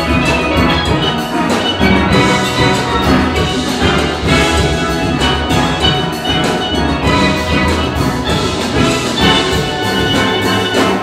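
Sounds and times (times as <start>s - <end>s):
drums: 0.0s - 11.0s
steelpans struck in busy rhythm: 0.0s - 11.0s.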